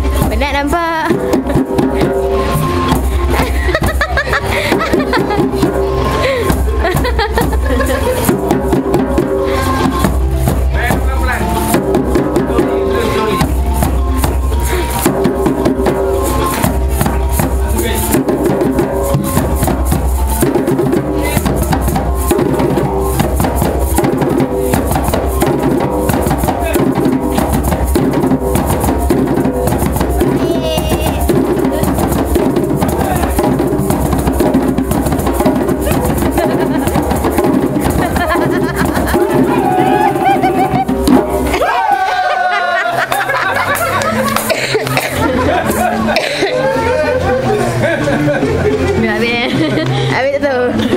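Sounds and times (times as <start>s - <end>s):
drum struck with stick: 0.0s - 41.7s
hand drums playing: 0.0s - 50.9s.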